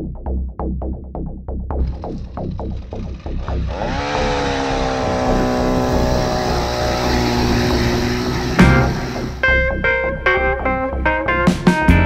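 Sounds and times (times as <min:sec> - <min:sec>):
ice auger engine revving: 0:01.8 - 0:09.4
music beat: 0:07.4 - 0:12.0.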